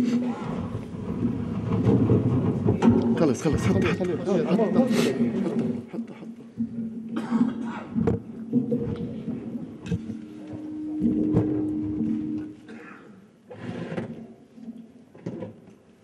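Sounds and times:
murmured voices: 0.0 - 6.5
steady tone: 10.1 - 12.7.

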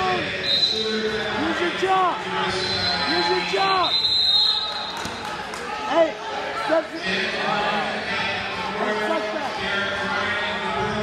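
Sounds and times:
crowd voices and shouts: 0.0 - 11.0.

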